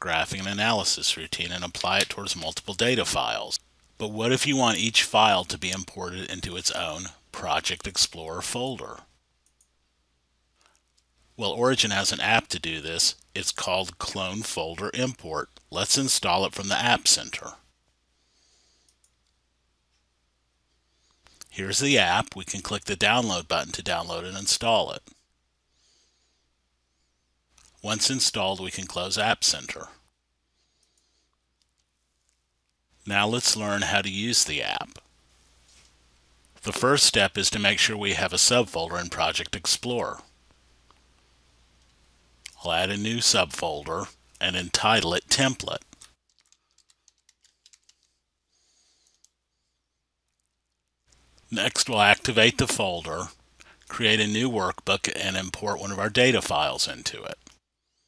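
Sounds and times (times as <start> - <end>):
faint keyboard typing: 9.4 - 9.8, 18.8 - 19.4, 45.6 - 48.2, 49.0 - 49.4.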